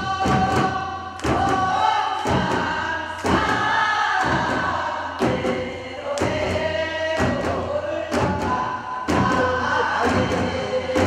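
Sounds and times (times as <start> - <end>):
group singing in unison: 0.0 - 11.0
small hand drums: 0.0 - 11.0.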